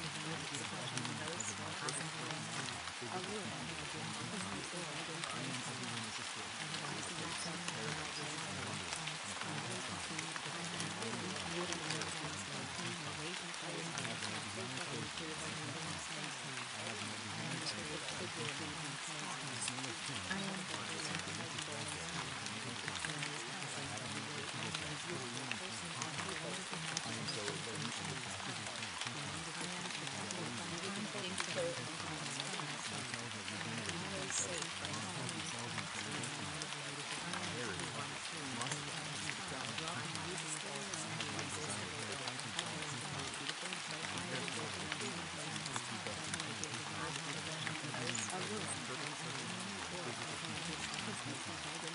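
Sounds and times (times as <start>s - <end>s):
low indistinct spoken voice: 0.0s - 51.9s
steady rain: 0.0s - 51.9s.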